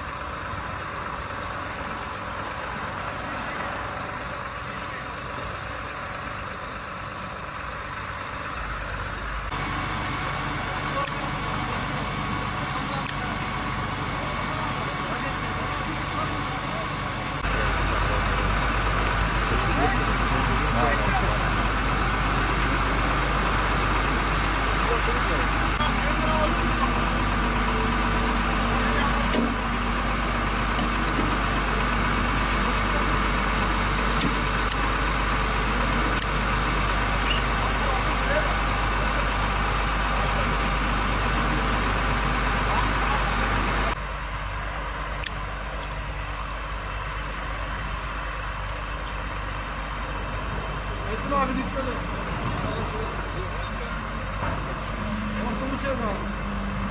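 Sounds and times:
vehicle engines idling: 0:00.0 - 0:56.9
people talking: 0:02.8 - 0:07.4, 0:09.5 - 0:44.0, 0:50.4 - 0:56.9.

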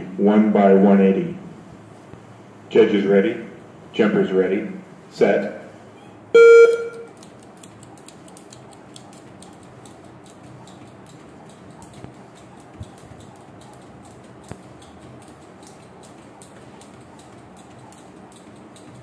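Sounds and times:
jump rope ticking on floor: 0:06.9 - 0:19.0.

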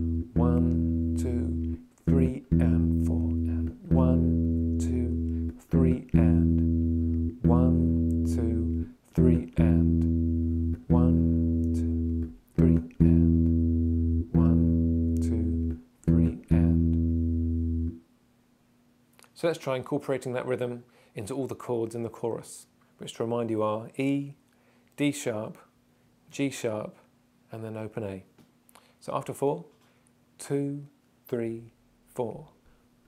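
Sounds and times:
bass guitar repeating a note: 0:00.0 - 0:18.0.

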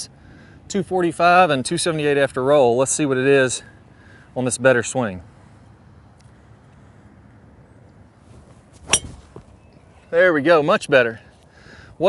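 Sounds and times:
golf club striking ball: 0:08.8 - 0:09.5.

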